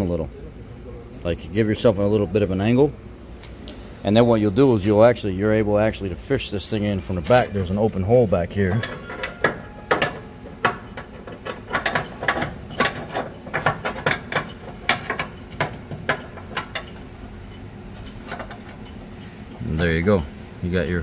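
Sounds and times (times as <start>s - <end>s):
metal clicks and clinks: 6.8s - 8.0s, 8.6s - 17.0s.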